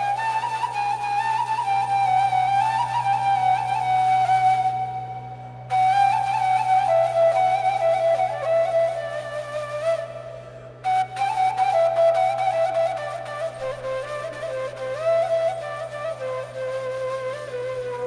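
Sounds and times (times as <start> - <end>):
low drone: 0.0 - 18.0
slow flute melody: 0.0 - 18.0.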